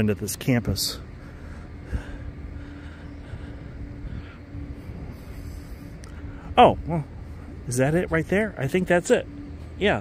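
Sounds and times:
constant low tone: 0.0 - 10.0
steady background hum: 0.0 - 10.0.

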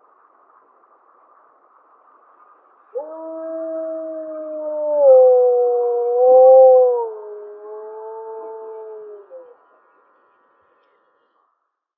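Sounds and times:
low wolf howl: 3.0 - 9.6.

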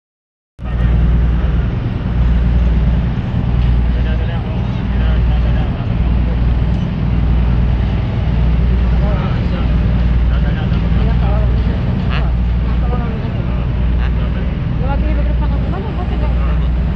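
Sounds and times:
ferry engines droning: 0.6 - 16.9
indistinct talking: 0.6 - 16.9.

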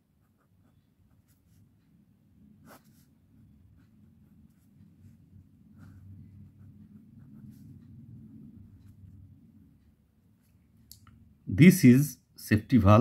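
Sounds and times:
low steady hum: 0.0 - 13.0
pen scratching on paper: 0.1 - 1.7, 2.6 - 7.8.

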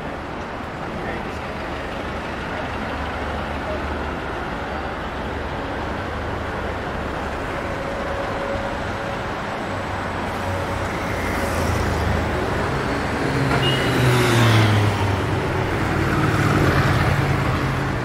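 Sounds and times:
buses and cars passing: 0.0 - 18.0.

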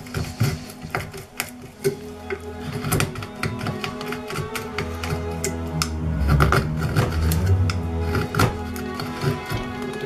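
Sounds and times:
gouge scraping wood: 0.0 - 10.0
low hum: 5.2 - 8.8.

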